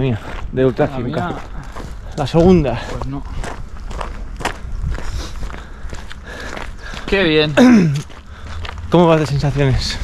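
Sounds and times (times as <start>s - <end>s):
footsteps on grass and gravel: 0.0s - 10.0s
steady low rumble: 0.0s - 10.0s.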